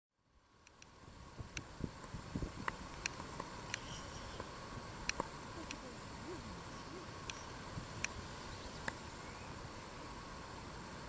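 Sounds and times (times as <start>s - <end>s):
steady background hiss: 0.1s - 11.0s
sharp ticks: 0.6s - 0.9s, 1.5s - 5.9s, 7.2s - 8.2s
faint low hooting calls: 3.6s - 10.2s.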